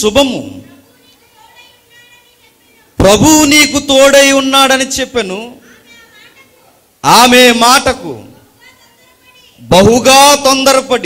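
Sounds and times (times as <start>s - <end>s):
man's amplified voice: 0.0s - 0.8s, 3.0s - 5.8s, 7.0s - 8.4s, 9.6s - 11.0s.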